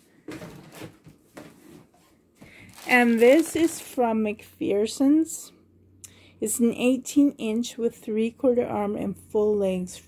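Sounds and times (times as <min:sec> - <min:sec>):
plastic bags rustling: 0:02.4 - 0:04.2.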